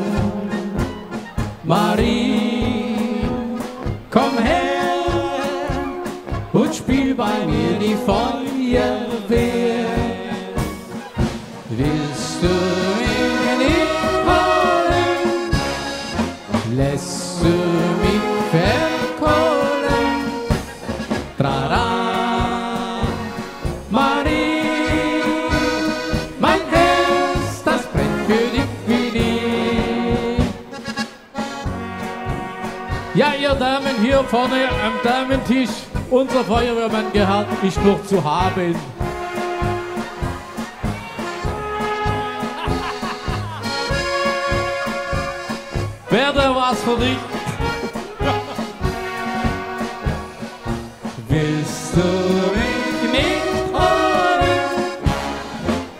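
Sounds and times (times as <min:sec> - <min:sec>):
man singing: 0:00.0 - 0:01.0, 0:01.6 - 0:10.8, 0:11.7 - 0:15.8, 0:16.5 - 0:20.6, 0:21.2 - 0:30.8, 0:33.0 - 0:39.6, 0:46.0 - 0:49.8, 0:51.1 - 0:55.6
accordion: 0:00.0 - 0:55.9
brass band playing a polka: 0:00.0 - 0:55.9.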